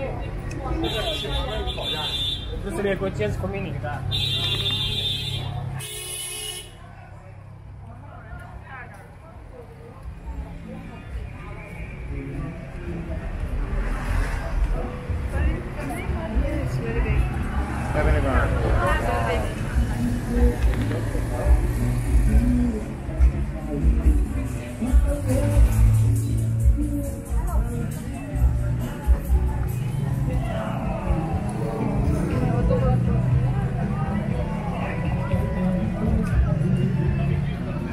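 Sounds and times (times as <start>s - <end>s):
passing motor vehicles rumbling: 0.0s - 37.9s
traffic: 0.0s - 37.9s
voices: 0.0s - 37.9s.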